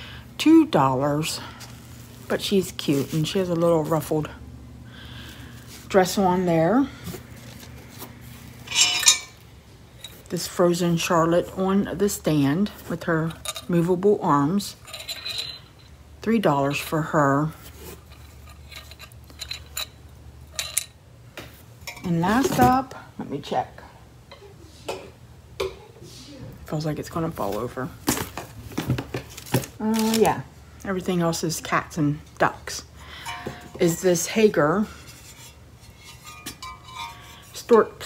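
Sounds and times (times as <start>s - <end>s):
ceramic object rubbing: 7.9s - 9.4s, 14.8s - 15.8s, 34.6s - 38.0s
ceramic clink: 8.7s - 9.4s.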